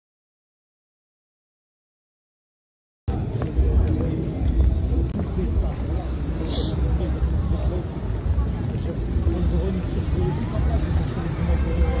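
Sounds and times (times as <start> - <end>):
low street rumble: 3.1 - 12.0.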